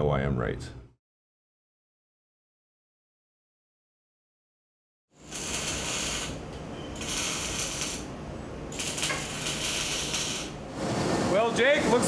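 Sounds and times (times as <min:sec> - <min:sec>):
arc welding crackling and hissing: 0:05.2 - 0:08.1, 0:08.7 - 0:12.0
low shop hum: 0:05.2 - 0:12.0.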